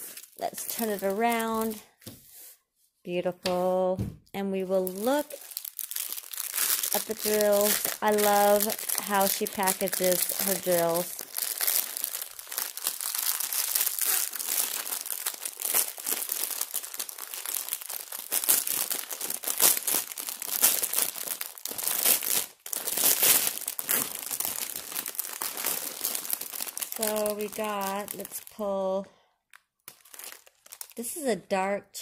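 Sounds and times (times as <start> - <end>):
plastic packaging crinkling: 0.0 - 2.1, 4.7 - 31.2.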